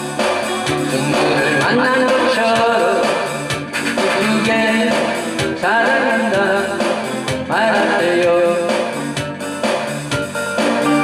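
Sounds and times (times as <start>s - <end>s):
strummed acoustic guitar: 0.0s - 8.6s
man singing pop ballad: 0.8s - 9.3s.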